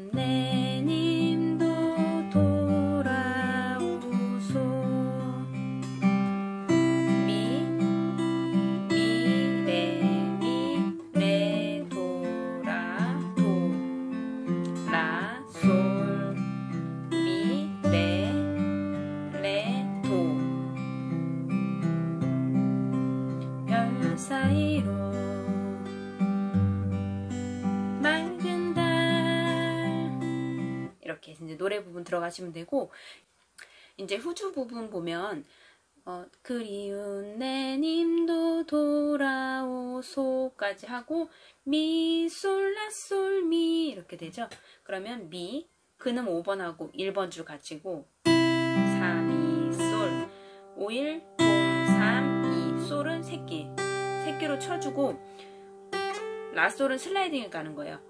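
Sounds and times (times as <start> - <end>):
fingerstyle acoustic guitar: 0.1 - 31.0, 48.2 - 58.0.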